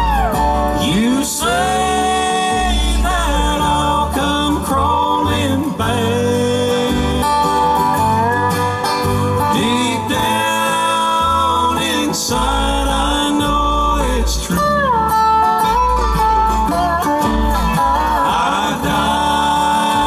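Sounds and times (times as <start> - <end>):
acoustic guitar: 0.0 - 20.0
banjo: 0.0 - 20.0
dobro sliding notes: 0.0 - 20.0
mandolin: 0.0 - 20.0
upright bass: 0.0 - 20.0.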